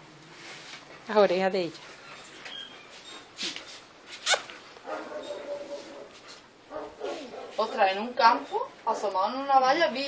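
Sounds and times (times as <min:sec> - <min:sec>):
dog whining: 0:04.2 - 0:06.1
dog barking: 0:04.8 - 0:07.8.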